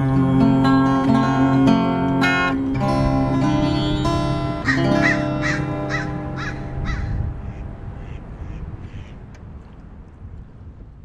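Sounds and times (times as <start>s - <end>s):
acoustic guitar chord ringing: 0.0s - 8.0s
bird calling: 4.6s - 9.2s.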